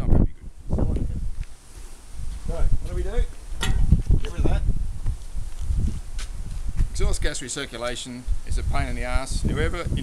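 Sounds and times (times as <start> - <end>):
wind rumble on microphone: 0.0 - 7.4, 8.2 - 10.0
man speaking: 7.0 - 10.0.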